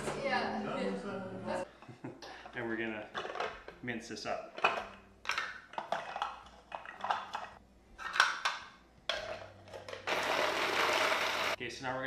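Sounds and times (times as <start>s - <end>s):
food chopper motor whirring: 10.0s - 11.6s.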